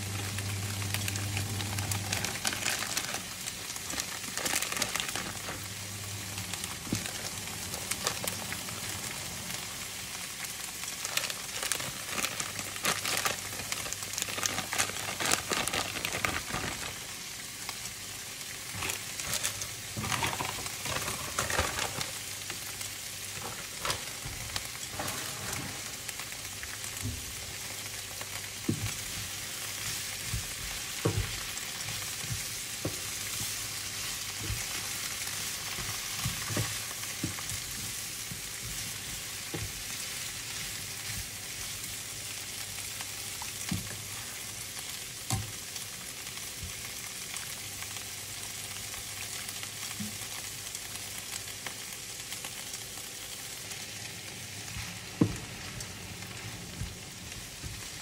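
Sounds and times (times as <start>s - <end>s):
vegetables sizzling in a pan: 0.0s - 58.0s.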